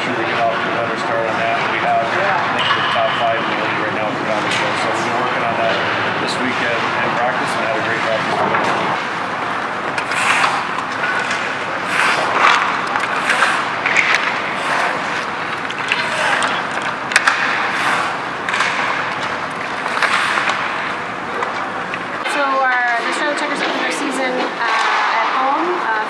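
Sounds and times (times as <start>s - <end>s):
steady background noise: 0.0s - 26.0s
sticks striking pucks: 8.0s - 22.2s
skate blades scraping on ice: 10.0s - 20.7s.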